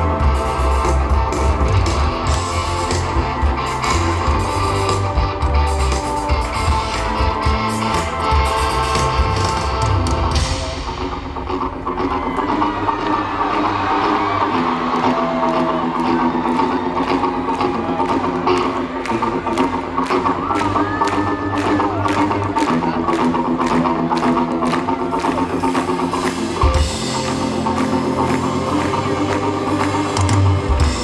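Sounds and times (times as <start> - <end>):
live pop-rock band: 0.0 - 31.0.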